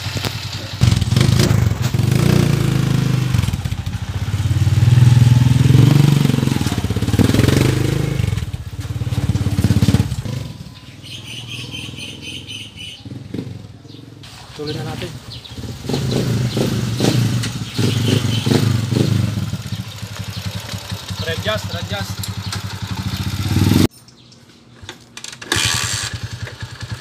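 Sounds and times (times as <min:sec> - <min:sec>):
motorcycle engine riding off: 0:00.0 - 0:23.9, 0:25.1 - 0:27.0.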